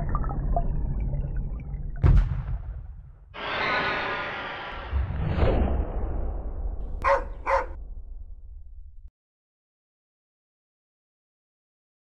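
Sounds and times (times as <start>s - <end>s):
low rumble: 0.0s - 9.1s
dog barking: 7.0s - 7.8s.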